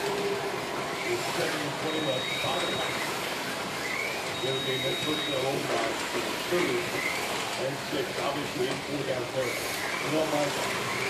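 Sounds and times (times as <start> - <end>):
slot car motors whirring: 0.0 - 11.0.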